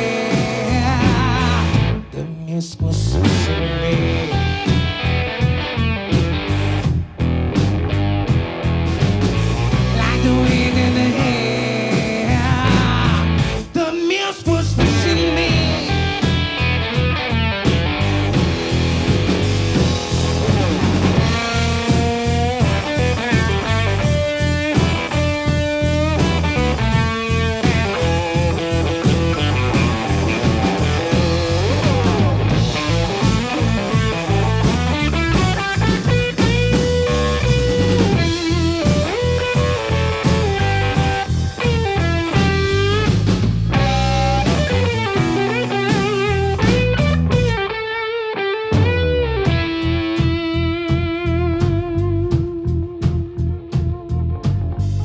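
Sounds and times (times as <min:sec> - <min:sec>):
electric guitar lead: 0:00.0 - 0:02.2, 0:03.1 - 0:55.0
bass guitar: 0:00.0 - 0:55.0
drums: 0:00.0 - 0:55.0.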